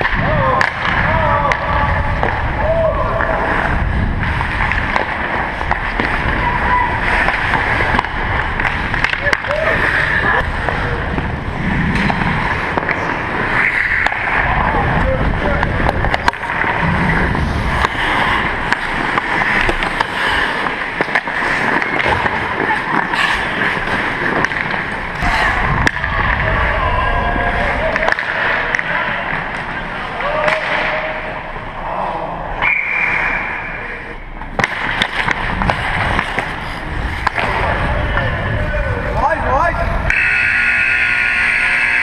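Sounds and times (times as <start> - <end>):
indistinct players' voices: 0.0 - 42.0
sticks and puck clacking: 0.0 - 42.0
wind on microphone: 0.2 - 4.7
skate blades scraping on ice: 2.2 - 25.9, 34.5 - 38.2
steady high tone: 40.1 - 42.0.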